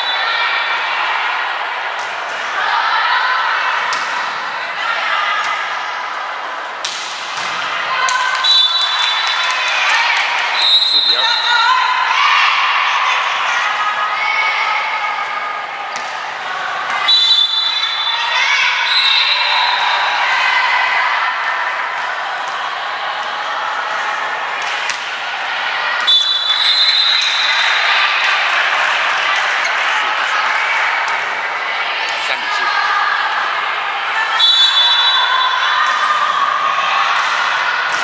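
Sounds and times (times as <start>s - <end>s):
players and spectators shouting: 0.0s - 6.8s, 7.5s - 38.0s
referee's whistle two-tone blasts: 10.6s - 11.5s.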